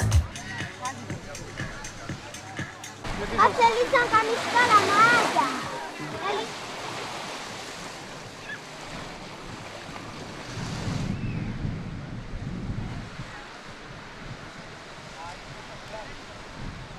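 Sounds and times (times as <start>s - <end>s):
sea surf washing on beach: 0.4s - 16.9s
wind buffeting microphone: 7.2s - 16.9s.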